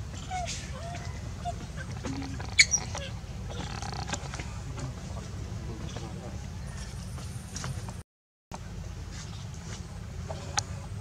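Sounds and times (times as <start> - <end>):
monkeys squeaky calls: 0.1 - 4.3.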